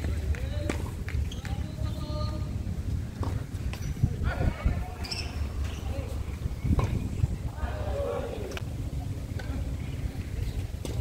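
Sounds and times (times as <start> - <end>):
low steady rumble: 1.9 - 11.0
tennis ball hit by racquet: 6.7 - 7.2
player shouting: 7.5 - 8.6.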